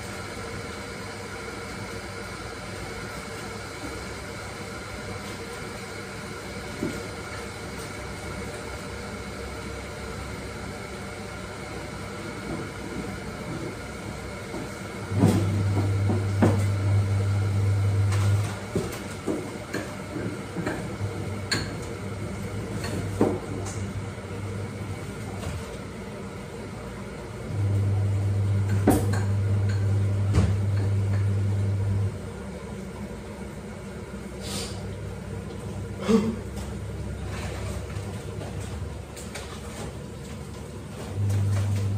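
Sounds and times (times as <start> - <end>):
kitchen appliance humming: 0.0 - 41.9.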